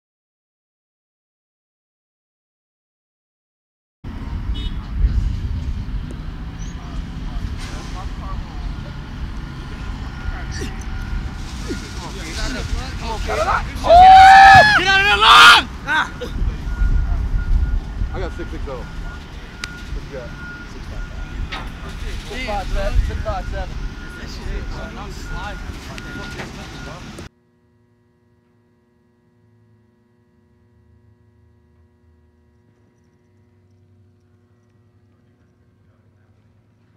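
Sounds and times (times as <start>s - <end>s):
low outdoor rumble: 4.1s - 27.3s, 28.8s - 36.9s.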